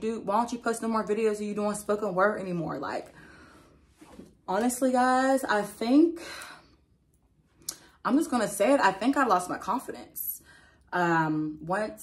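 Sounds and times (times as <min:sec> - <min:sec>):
woman speaking: 0:00.0 - 0:03.1, 0:04.5 - 0:06.5, 0:08.0 - 0:12.0.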